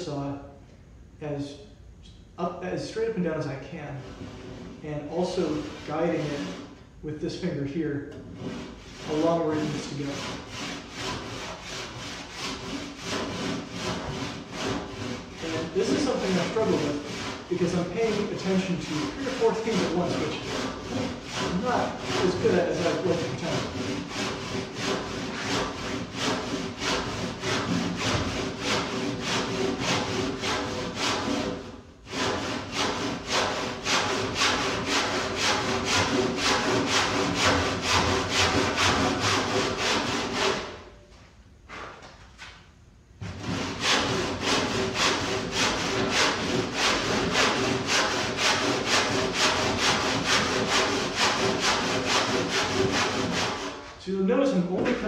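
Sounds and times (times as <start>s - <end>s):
hand saw cutting wood: 5.4s - 6.7s, 8.1s - 40.8s, 43.2s - 54.0s.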